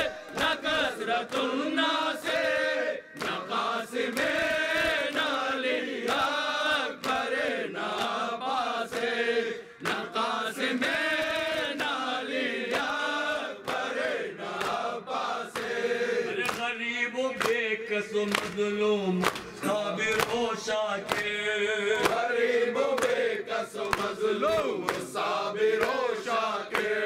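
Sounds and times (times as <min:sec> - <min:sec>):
men chanting a lament in unison: 0:00.0 - 0:27.0.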